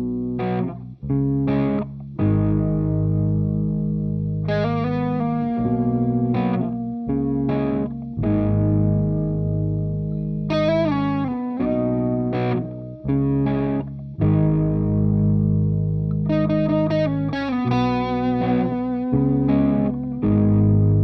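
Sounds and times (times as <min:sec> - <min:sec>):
distorted electric guitar chords: 0:00.0 - 0:21.0.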